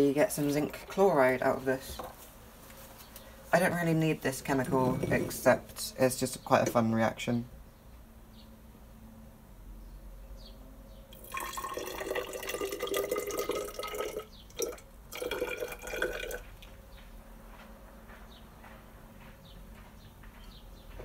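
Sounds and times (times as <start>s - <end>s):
liquid pouring into glass cylinder: 11.1s - 16.4s.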